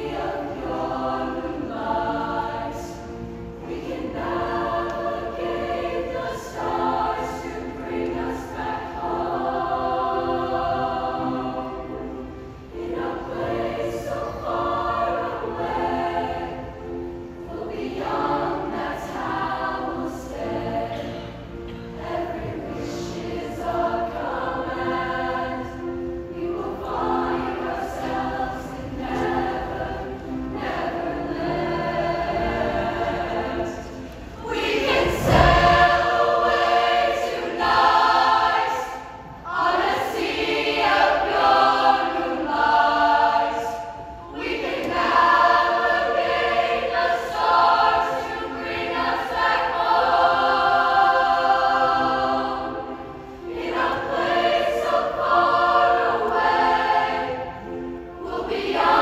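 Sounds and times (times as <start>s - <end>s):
choir singing held chords: 0.0s - 59.0s
low thump: 34.9s - 36.2s.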